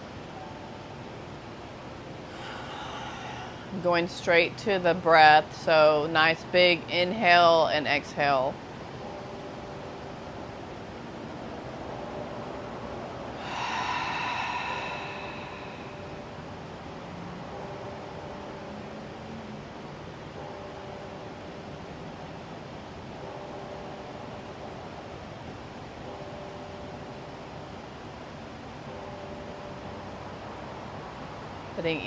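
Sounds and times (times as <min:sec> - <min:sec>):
background hiss: 0:00.0 - 0:32.0
faint hum: 0:00.0 - 0:32.0
mouth exhale: 0:13.4 - 0:16.1.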